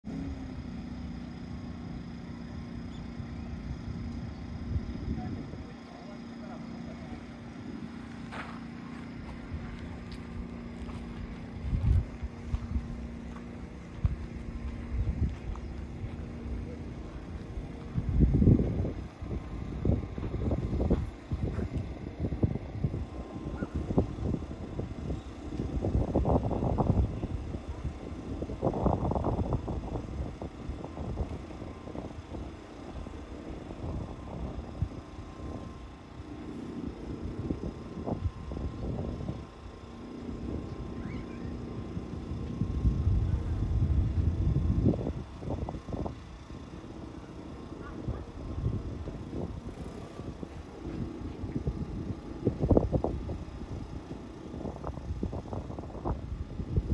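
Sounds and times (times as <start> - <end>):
wind buffeting microphone: 7.3 - 56.9.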